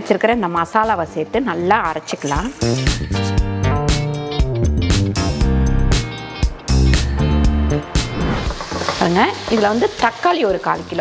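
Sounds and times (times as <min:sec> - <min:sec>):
plucked guitar and bass music: 0:00.9 - 0:10.0.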